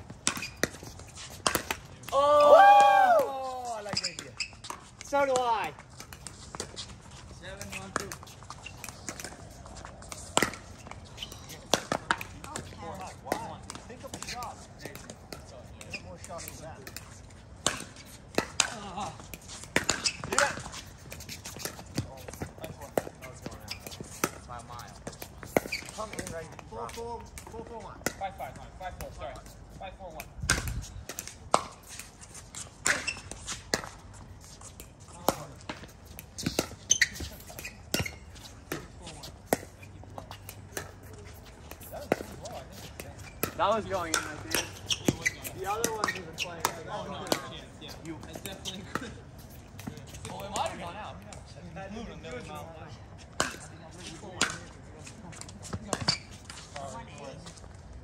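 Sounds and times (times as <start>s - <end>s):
ball bouncing on hard court: 35.2s - 41.1s, 41.7s - 47.6s.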